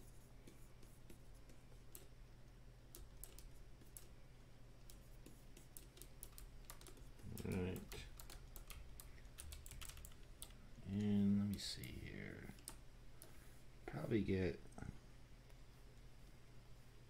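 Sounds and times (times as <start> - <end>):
steady low hum: 0.0 - 17.0
keyboard and mouse clicking: 2.9 - 4.1, 4.8 - 13.4.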